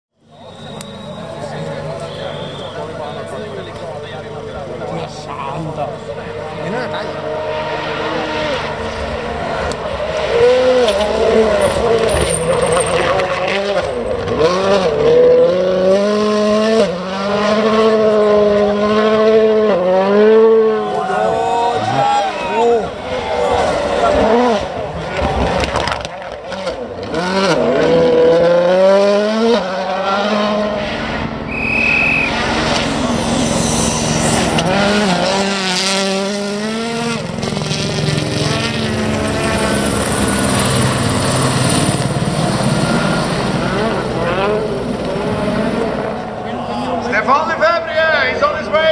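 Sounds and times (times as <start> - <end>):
rally car engines revving: 0.2 - 48.9.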